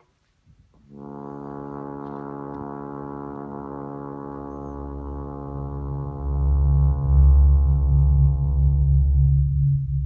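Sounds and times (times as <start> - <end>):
low sustained horn and electronics note: 0.8 - 10.0.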